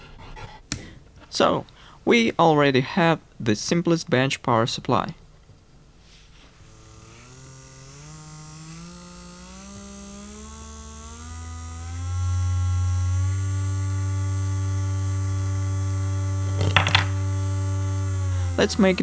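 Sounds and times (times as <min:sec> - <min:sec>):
small motor whining: 0:06.3 - 0:19.0
wooden figure clattering on table: 0:16.6 - 0:17.1.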